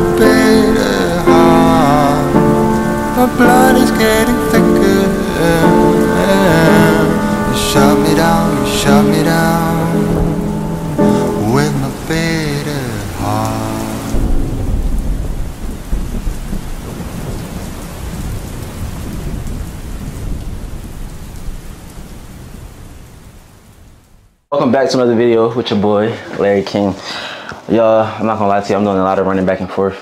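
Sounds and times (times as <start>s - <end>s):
person singing a song: 0.0s - 14.4s
steady rain: 0.0s - 24.7s, 25.7s - 29.6s
low rumble of thunder: 13.7s - 24.0s.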